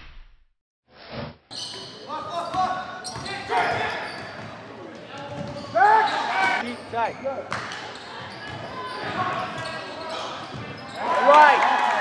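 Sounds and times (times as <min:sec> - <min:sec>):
basketball bouncing on court: 0:05.2 - 0:05.8, 0:06.8 - 0:09.8, 0:10.5 - 0:10.9.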